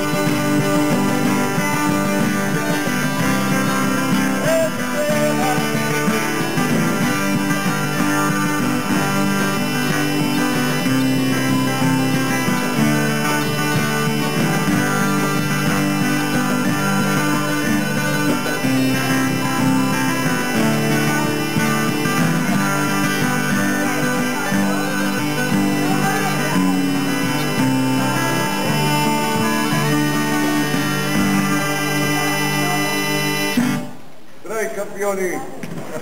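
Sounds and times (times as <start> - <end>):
bagpipes playing a tune: 0.0 - 33.9
acoustic guitar strumming: 0.0 - 34.3.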